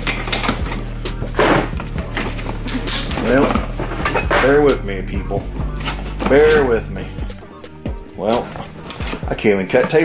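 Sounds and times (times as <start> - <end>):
packing tape being cut: 0.0 - 3.3
background music with bass: 0.0 - 10.0.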